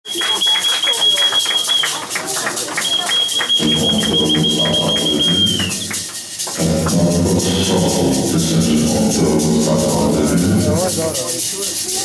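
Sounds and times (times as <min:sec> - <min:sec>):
crowd voices: 0:00.0 - 0:12.0
band music with low drums: 0:03.0 - 0:12.0
steady high-pitched tone: 0:03.4 - 0:12.0.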